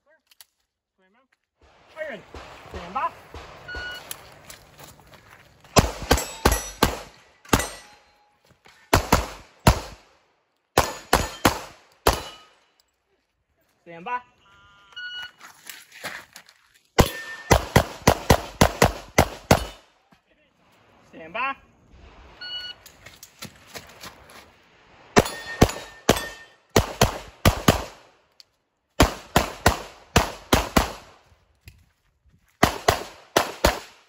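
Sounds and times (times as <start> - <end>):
pistol shots: 5.8 - 8.0, 8.9 - 10.1, 10.8 - 12.6, 17.0 - 19.9, 25.2 - 28.1, 29.0 - 31.2, 32.6 - 34.0
hits ringing on steel plates: 6.1 - 6.8, 7.5 - 8.2, 17.0 - 17.5, 25.2 - 26.6.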